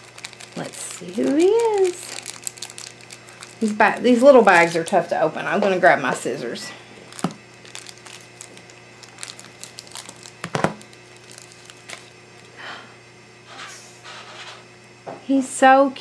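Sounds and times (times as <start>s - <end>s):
scissors snipping foil packet: 0.0s - 5.0s, 7.1s - 12.2s
foil packet crinkling: 0.0s - 5.1s, 7.0s - 12.6s.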